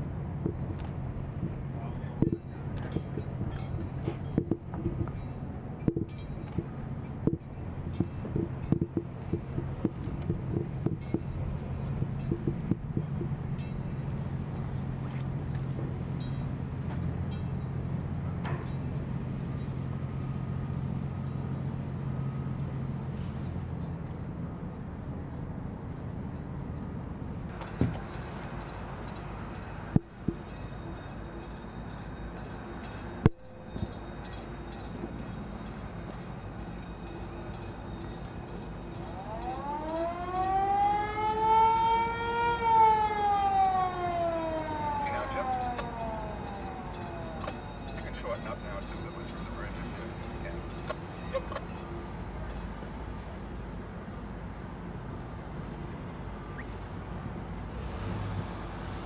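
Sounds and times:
siren wailing: 39.1 - 49.4.

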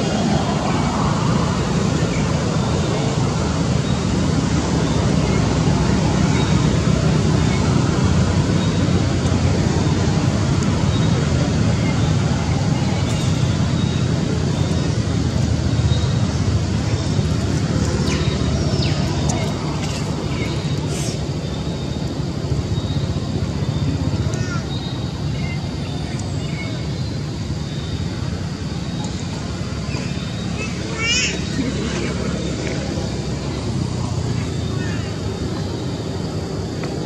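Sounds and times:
low rumbling background noise: 0.0 - 37.0.

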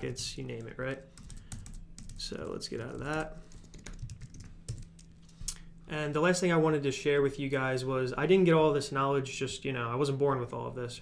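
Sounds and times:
computer keyboard keystrokes: 0.5 - 5.1.

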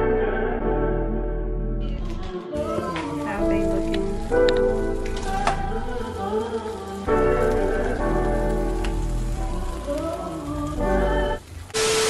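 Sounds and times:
background music with held notes: 0.0 - 12.0
food sizzling in a skillet: 2.6 - 12.0.

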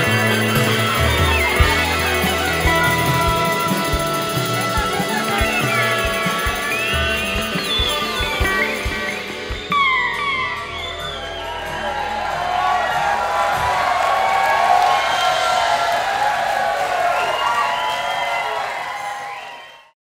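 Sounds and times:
live rock band: 0.0 - 19.0
audience cheering and whooping: 0.0 - 20.0.

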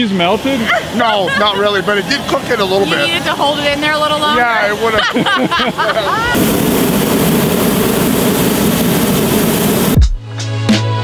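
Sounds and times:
propane burner blast: 0.0 - 10.1.

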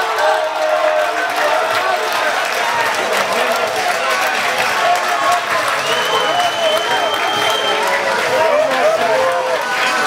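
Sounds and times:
people shouting: 0.0 - 10.0
spectators clapping and cheering: 0.0 - 10.0
long steady whistle: 5.8 - 7.9.

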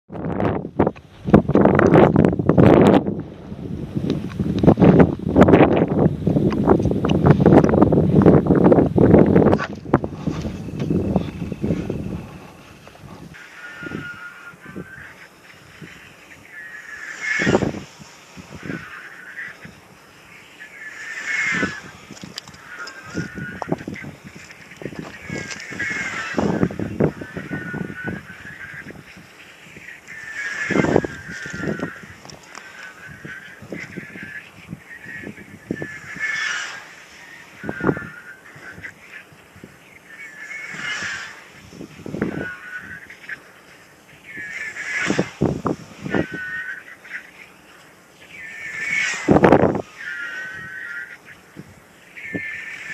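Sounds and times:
wind buffeting microphone: 0.1 - 52.9
glider whooshing past: 15.9 - 19.5, 20.2 - 23.2, 24.4 - 27.2, 35.8 - 37.7, 40.2 - 42.3, 44.2 - 46.2, 48.3 - 50.6
glider airframe whistle: 34.9 - 38.4.

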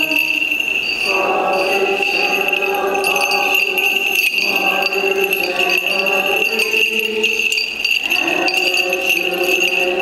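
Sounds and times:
high ringing tone: 0.0 - 10.0
slow liturgical music: 0.0 - 10.0
small bells jingling: 0.0 - 10.0.

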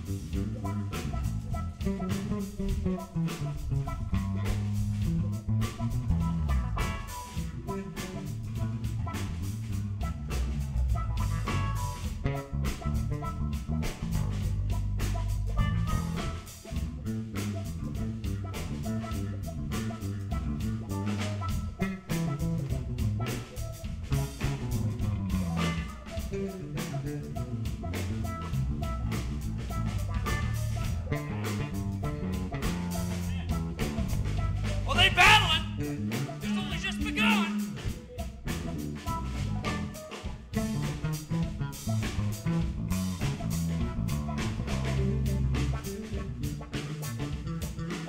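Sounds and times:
drum kit beat: 0.0 - 48.0
electric bass guitar lines: 0.0 - 48.0.

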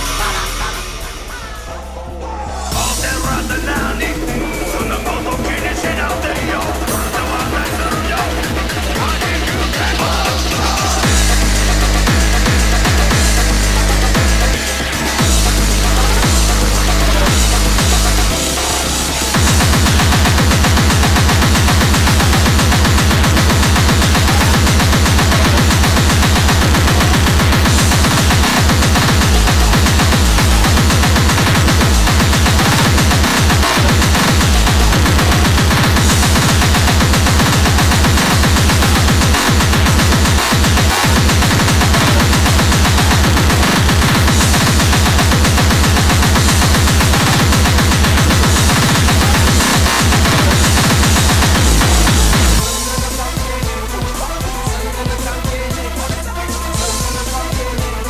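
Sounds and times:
distorted kick drums hammering: 0.0 - 1.8, 2.7 - 58.0
noisy synth distortion: 0.0 - 58.0.

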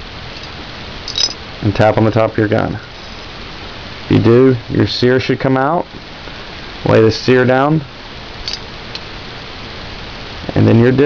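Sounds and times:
steady background hiss: 0.0 - 11.0
faint light clicks of handled parts: 8.4 - 9.1.

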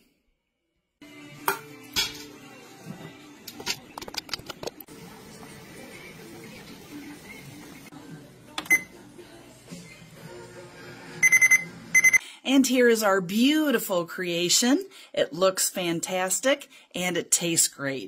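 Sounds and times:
soft background music: 1.0 - 12.2.

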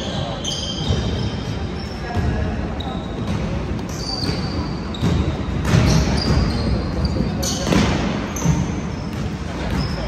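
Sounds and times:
sneakers squeaking: 0.0 - 10.0.

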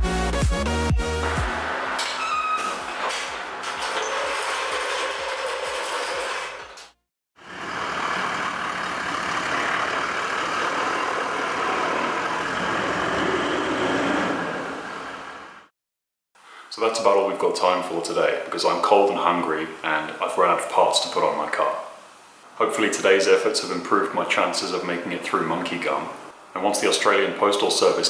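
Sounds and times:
dance music: 0.0 - 3.0
vehicle moving rush: 1.1 - 5.4, 7.4 - 15.7.

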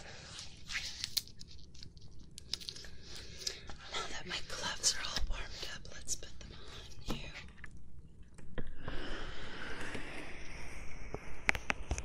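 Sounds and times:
latex gloves snapping and crackling: 0.7 - 2.8.

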